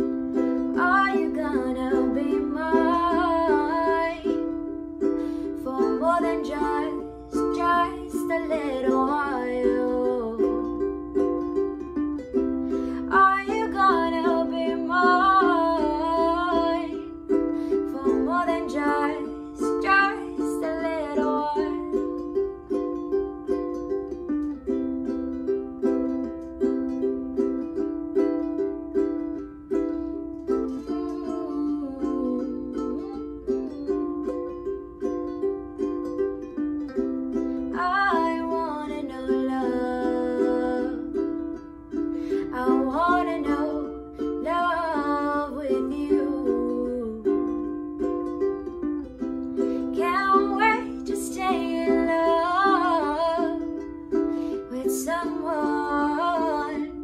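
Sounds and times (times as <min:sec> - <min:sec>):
woman singing: 0:00.0 - 0:23.0, 0:30.5 - 0:34.6, 0:37.6 - 0:57.0
ukulele strumming: 0:00.0 - 0:57.0.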